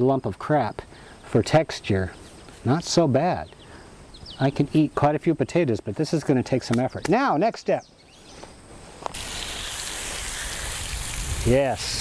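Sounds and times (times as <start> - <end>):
water spray hissing: 9.1 - 12.0.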